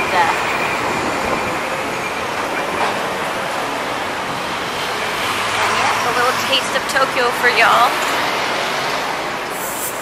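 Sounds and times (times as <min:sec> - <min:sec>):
passing vehicles rushing: 0:00.0 - 0:10.0
brief high hiss: 0:09.5 - 0:10.0.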